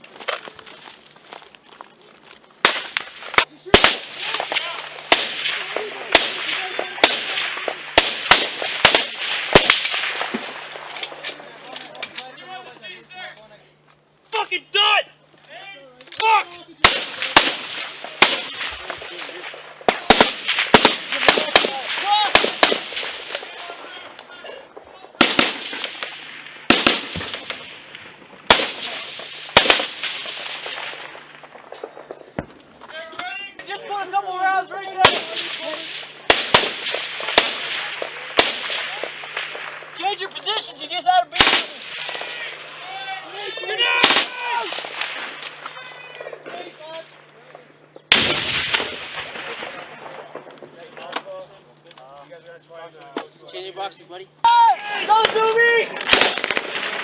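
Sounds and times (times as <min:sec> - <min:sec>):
rifle shots echoing: 0:02.6 - 0:11.6, 0:16.8 - 0:24.4, 0:25.0 - 0:32.6, 0:34.9 - 0:47.3, 0:48.1 - 0:50.7, 0:55.0 - 0:57.0
people shouting: 0:14.3 - 0:16.7, 0:20.9 - 0:25.1, 0:40.0 - 0:44.9, 0:45.6 - 0:47.0, 0:54.4 - 0:56.3.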